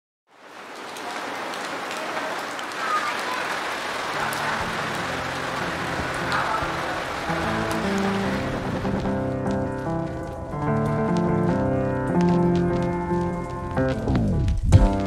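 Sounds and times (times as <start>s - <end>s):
steady rain falling: 0.3s - 15.0s.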